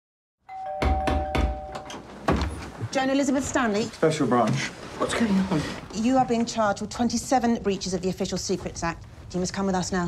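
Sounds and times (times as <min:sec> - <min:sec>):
two-tone doorbell ringing: 0:00.5 - 0:02.1
knocking on a door: 0:00.8 - 0:01.7.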